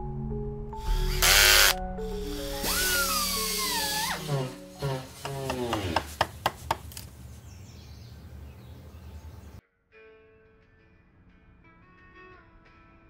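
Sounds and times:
soft background music: 0.0 - 6.2
cordless power drill: 0.8 - 6.0.

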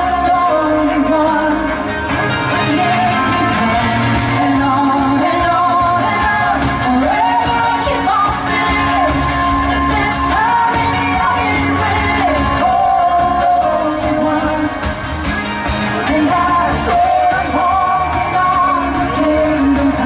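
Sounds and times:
live pop band playing: 0.0 - 20.0
woman singing: 0.0 - 20.0.

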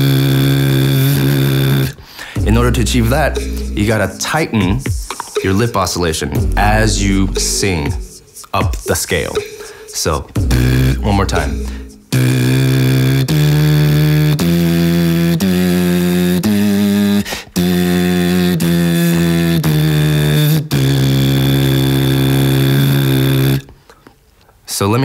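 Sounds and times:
lip buzzing with sung note: 0.0 - 4.5, 10.4 - 23.7.

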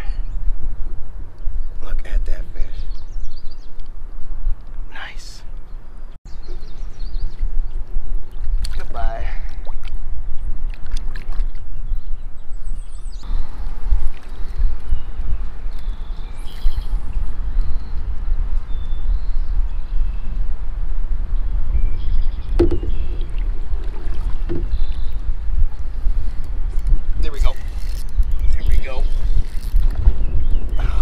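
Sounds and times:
wind buffeting microphone: 0.0 - 31.0
faint water sounds: 6.5 - 12.4, 13.2 - 18.0, 22.5 - 30.0
short knocks: 22.6 - 23.1.

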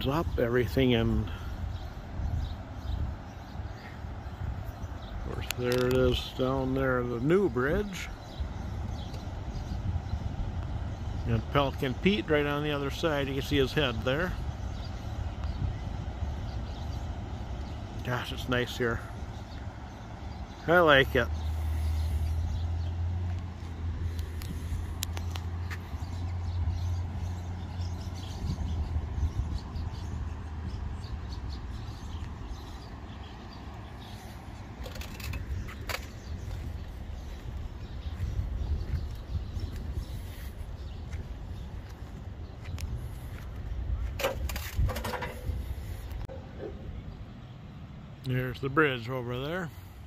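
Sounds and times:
steady low rumble: 0.0 - 7.2, 8.0 - 48.8.

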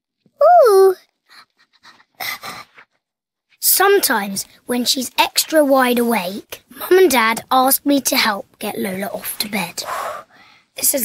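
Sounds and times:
girl's playful vocal call: 0.4 - 1.0
faint breathy sounds: 9.8 - 10.8.

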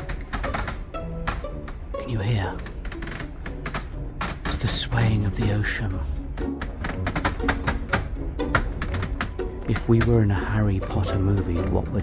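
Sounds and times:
soft music: 0.0 - 12.0
wooden bookcases creaking: 0.0 - 12.0.

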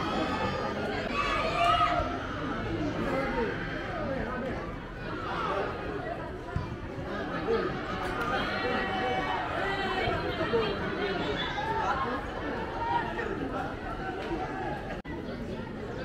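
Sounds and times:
spectators chattering: 0.0 - 16.0.

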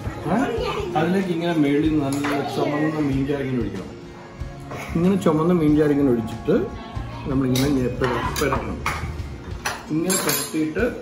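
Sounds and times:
metal spoon clinking on plate: 7.5 - 10.7.

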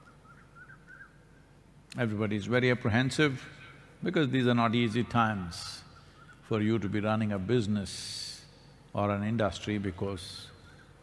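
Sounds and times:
bird chirping: 0.0 - 1.3, 5.8 - 6.5
faint low hum: 0.0 - 11.0.

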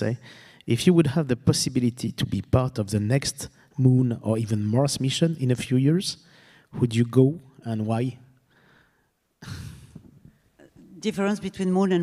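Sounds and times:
person sighing: 9.4 - 10.8.

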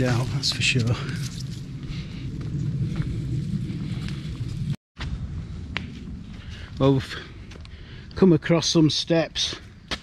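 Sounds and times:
wind rumbling on microphone: 0.0 - 8.5.

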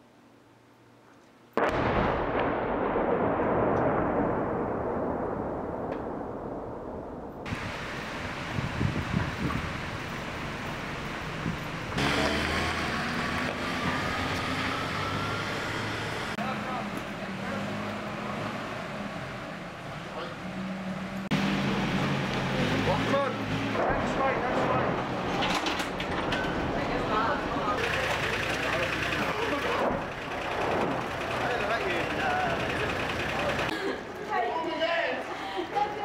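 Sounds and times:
loud explosion blast: 1.6 - 7.8
street noise: 7.4 - 36.0
voices: 16.3 - 19.4, 22.4 - 36.0.

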